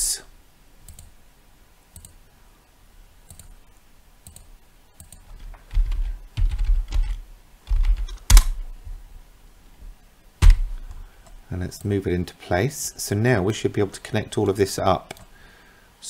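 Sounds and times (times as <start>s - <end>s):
computer keyboard typing: 0.9s - 1.1s, 3.3s - 3.6s, 4.3s - 8.5s.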